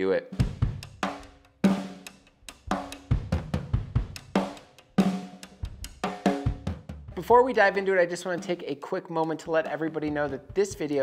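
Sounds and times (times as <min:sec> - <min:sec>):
drum-kit beat: 0:00.3 - 0:11.0.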